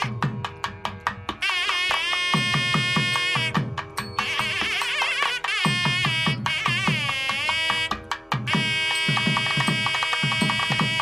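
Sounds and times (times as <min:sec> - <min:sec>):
steady drum beat: 0:00.0 - 0:11.0
reed pipe playing: 0:01.4 - 0:11.0.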